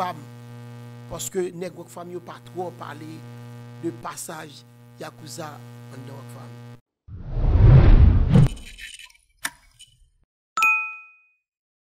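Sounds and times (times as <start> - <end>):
whoosh: 7.1 - 8.6
bright bell ding: 10.6 - 11.4.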